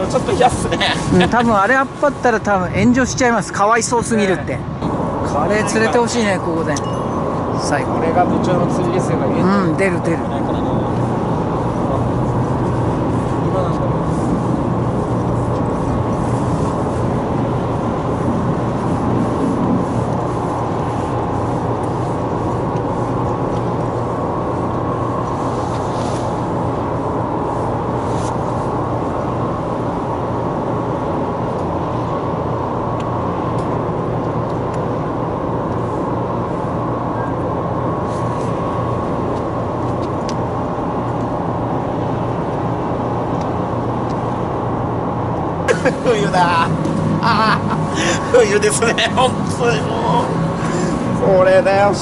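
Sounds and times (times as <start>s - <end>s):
low mechanical drone: 0.0s - 52.0s
person speaking: 45.7s - 52.0s.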